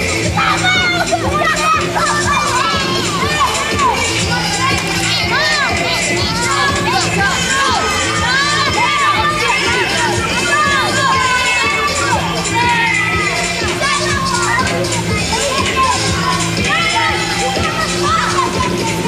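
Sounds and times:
children shouting and cheering: 0.0s - 19.0s
music playing: 0.0s - 19.0s.

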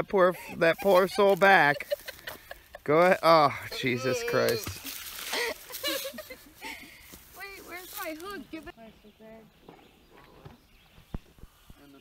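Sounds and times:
voices: 0.0s - 10.6s.

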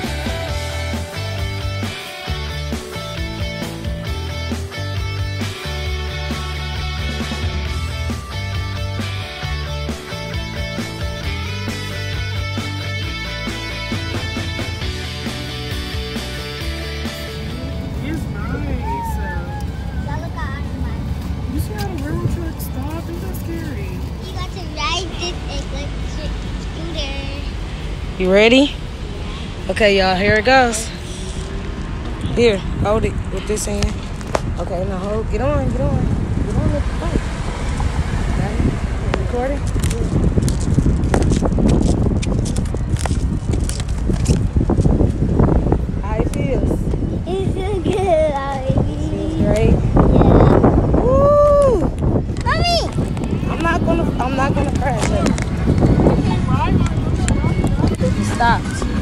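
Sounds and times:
music: 0.0s - 19.2s
wind buffeting microphone: 7.0s - 59.0s
unclear voices: 46.0s - 59.0s.

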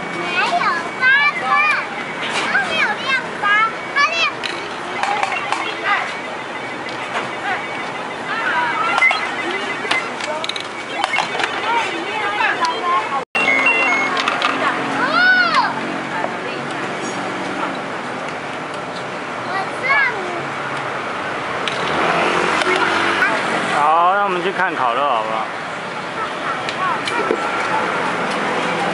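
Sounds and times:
young children talking: 0.0s - 18.2s, 19.0s - 21.1s, 21.9s - 28.9s
outdoor street noise: 0.0s - 28.9s
motor scooter passing: 13.8s - 18.0s, 21.7s - 24.6s.

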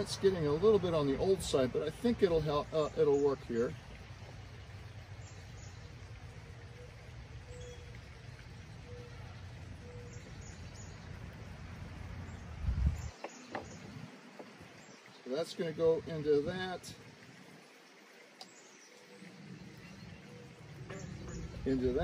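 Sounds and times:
faint bird calls: 5.3s - 11.0s, 18.4s - 22.0s.

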